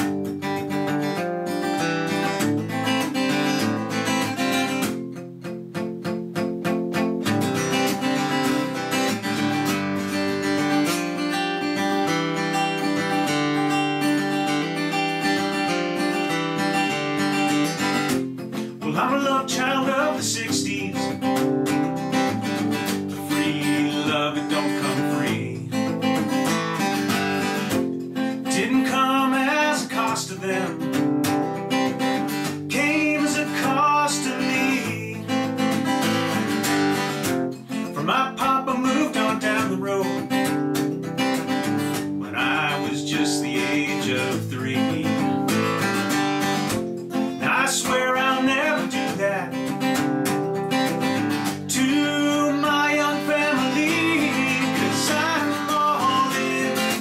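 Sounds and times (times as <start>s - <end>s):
acoustic guitar strumming: 0.0s - 57.0s
man singing: 18.6s - 21.8s, 23.0s - 26.4s, 27.0s - 31.2s, 32.5s - 36.0s, 37.7s - 40.6s, 41.9s - 46.1s, 47.2s - 50.0s, 51.3s - 57.0s.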